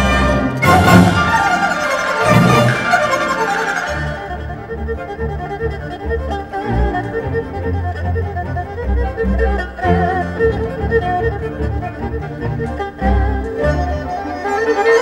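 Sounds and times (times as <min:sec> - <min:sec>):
erhu playing quick notes: 0:00.0 - 0:15.0
traditional orchestra low pulsing: 0:00.0 - 0:15.0.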